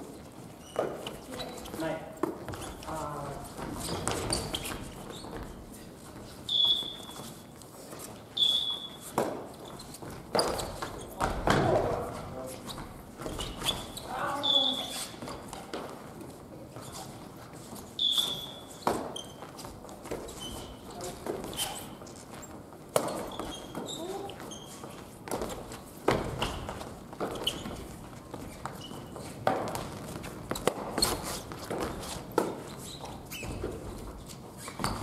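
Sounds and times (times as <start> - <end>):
sneaker squeaks: 0.2 - 35.0.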